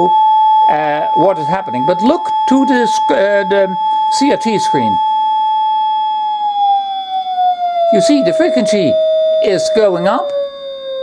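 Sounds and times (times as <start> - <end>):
electronic test tone sliding lower: 0.0 - 11.0
faint higher tones: 0.0 - 11.0.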